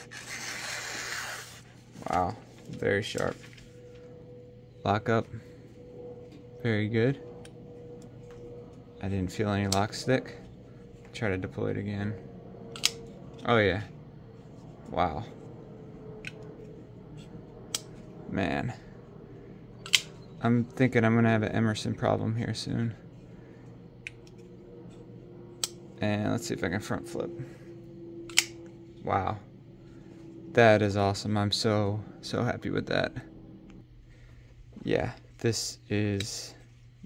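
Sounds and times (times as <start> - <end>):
knife slicing through paper: 0.0 - 1.7
sharp metallic knife click: 28.3 - 28.6.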